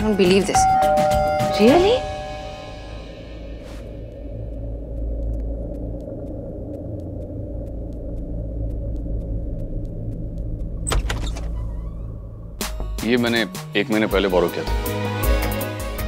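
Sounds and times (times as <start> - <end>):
faint ticking: 0.0 - 10.9
low rumbling film score drone: 0.0 - 15.0
door opening clatter: 10.8 - 12.1.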